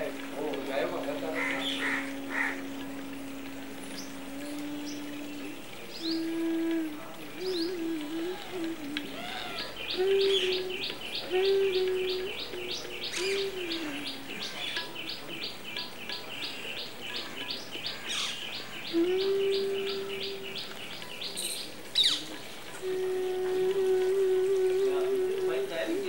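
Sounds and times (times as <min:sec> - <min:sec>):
bird chirping: 0:00.0 - 0:23.0
held low note: 0:00.0 - 0:26.0.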